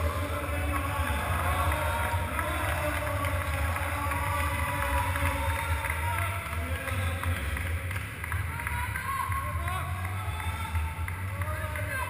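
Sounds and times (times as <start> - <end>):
indistinct voices murmuring: 0.0 - 12.0.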